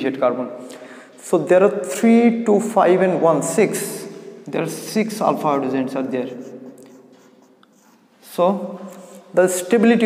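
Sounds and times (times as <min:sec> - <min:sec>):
person speaking: 0:00.0 - 0:10.0
marker pen on whiteboard: 0:05.1 - 0:10.0.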